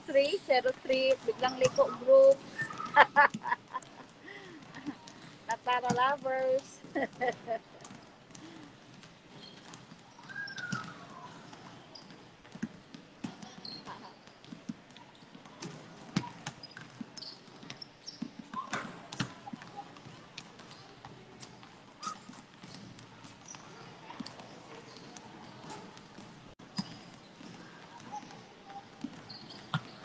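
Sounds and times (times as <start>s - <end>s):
basketballs bouncing on concrete: 0.2s - 30.0s.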